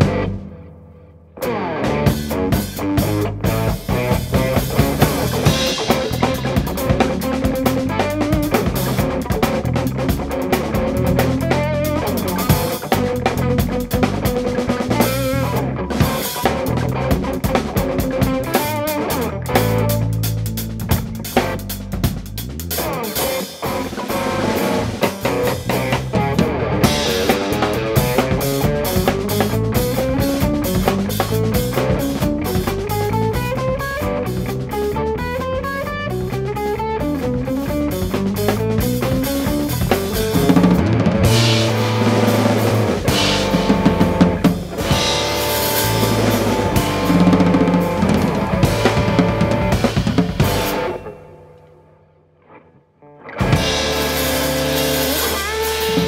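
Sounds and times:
electric bass: 0.0 - 51.7, 53.1 - 56.0
drum kit: 0.0 - 51.9, 53.3 - 56.0
electric guitar: 0.0 - 56.0.

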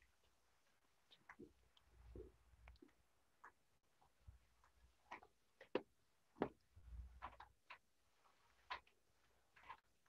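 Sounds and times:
faint irregular clicks and knocks: 0.0 - 10.0.

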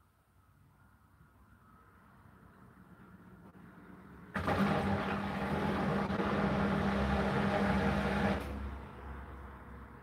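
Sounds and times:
washing machine rushing noise: 4.3 - 8.9
washing machine humming: 4.3 - 9.0.

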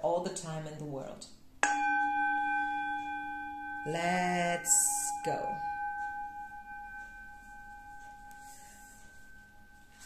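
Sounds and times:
metal singing bowl ringing: 1.6 - 10.0.

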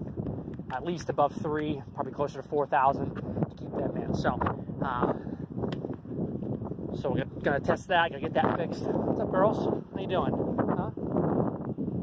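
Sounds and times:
wind on phone microphone: 0.0 - 12.0.

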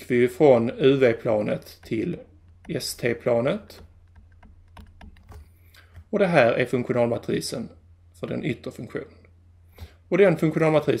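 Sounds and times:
stylus tapping on tablet: 1.6 - 6.1.

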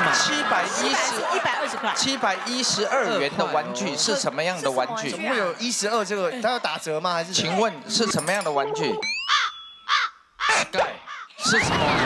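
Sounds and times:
crow cawing: 9.3 - 11.4.

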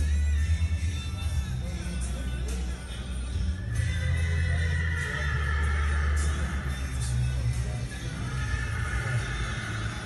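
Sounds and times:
background music with deep bass: 0.0 - 10.0
horse whinnying: 3.9 - 7.2, 8.1 - 10.0.

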